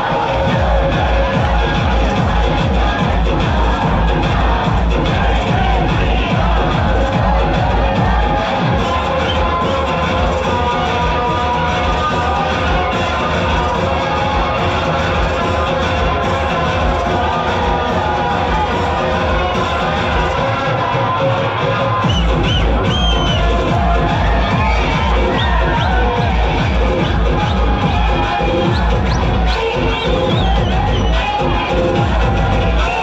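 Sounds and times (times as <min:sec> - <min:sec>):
crowd shouting and cheering: 0:00.0 - 0:33.0
electronic dance music: 0:00.0 - 0:33.0
heavy bass beat: 0:00.0 - 0:33.0.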